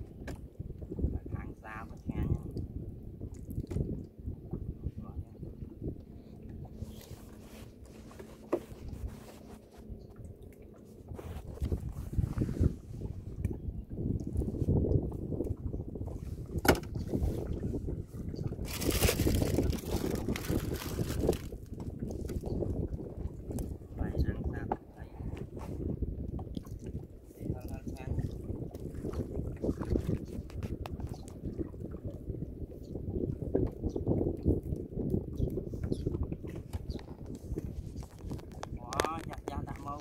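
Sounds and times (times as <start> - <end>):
wind on microphone: 0.0 - 40.0
small knocks and splashes: 16.6 - 17.2, 35.8 - 39.9.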